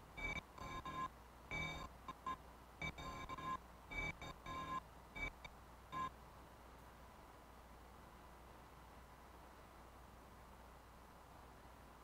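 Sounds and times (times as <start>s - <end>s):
faint low hum and hiss: 0.0s - 12.0s.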